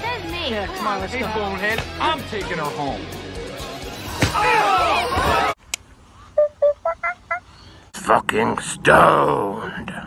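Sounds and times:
toy monkey chirping: 6.4s - 7.4s.

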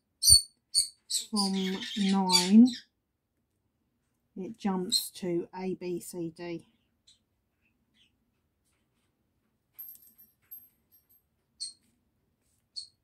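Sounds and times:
bird chirping: 0.2s - 2.9s, 6.8s - 8.2s, 11.6s - 11.8s, 12.7s - 13.0s.

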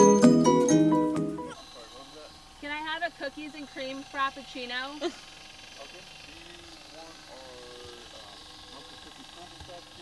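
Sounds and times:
low background hum: 1.3s - 10.0s.

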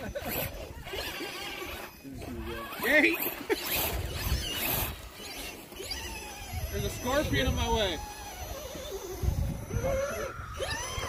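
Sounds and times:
faint voices talking: 0.1s - 11.0s
wind rumble on microphone: 5.9s - 11.0s.

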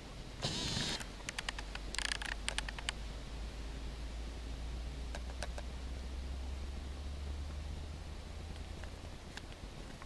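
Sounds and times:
tall grass rustling: 0.0s - 7.0s
low steady rumble: 0.0s - 10.0s
sharp clicks: 0.4s - 3.0s.

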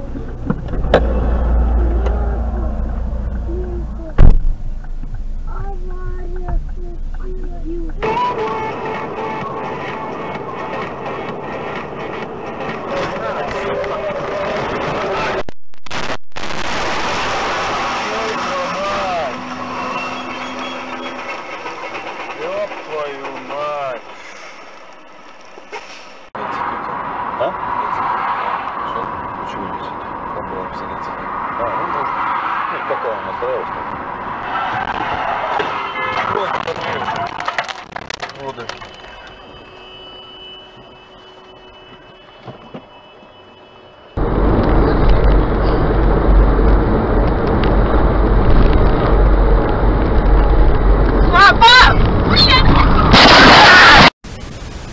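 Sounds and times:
voices inside a car: 0.0s - 4.4s, 5.5s - 8.6s, 12.8s - 15.4s, 26.4s - 33.8s, 36.2s - 37.6s, 38.2s - 39.3s, 51.3s - 52.8s
road engine and wind rumble: 0.0s - 15.5s, 16.6s - 40.0s, 44.2s - 54.1s.

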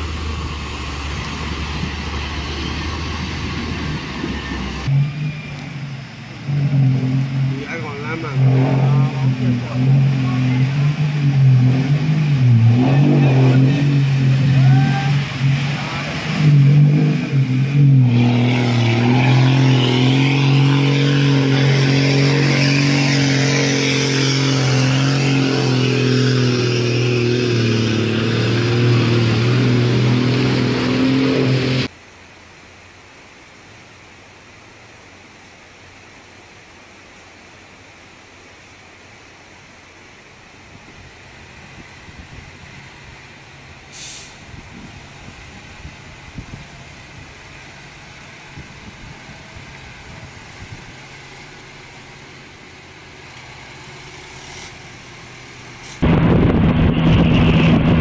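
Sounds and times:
rushing water hiss: 0.0s - 26.8s, 27.8s - 56.1s
heavy truck engine droning: 0.0s - 32.0s, 38.2s - 58.0s
faint steady hiss: 31.9s - 56.0s.

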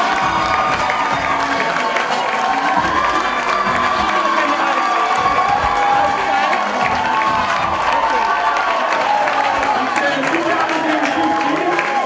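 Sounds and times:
crowd cheering and shouting: 0.0s - 12.0s
hand clapping: 0.0s - 12.0s.

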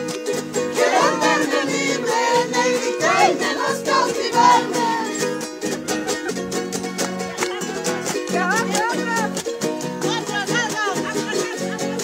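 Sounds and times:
small string instrument strummed fast: 0.0s - 12.0s
high-pitched singing: 0.8s - 5.5s.

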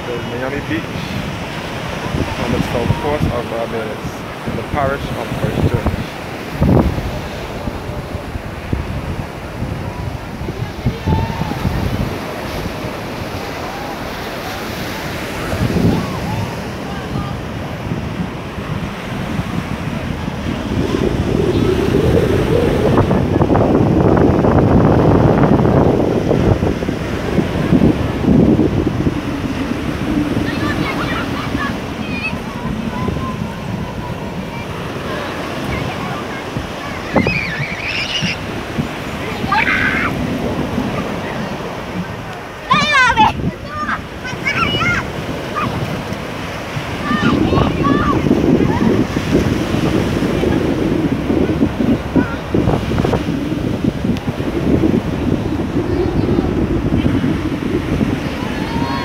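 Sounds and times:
waves breaking on beach: 0.0s - 59.0s.

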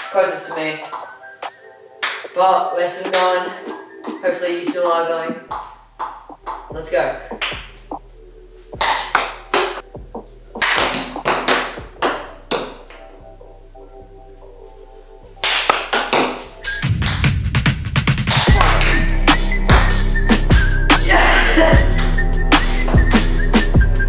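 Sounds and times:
background music: 0.0s - 24.0s
heavy bass beat: 5.5s - 14.2s, 16.4s - 24.0s.

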